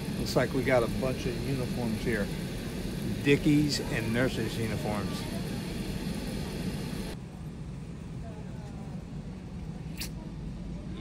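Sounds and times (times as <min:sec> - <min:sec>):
high hiss: 0:00.0 - 0:07.2
faint background voices: 0:00.2 - 0:11.0.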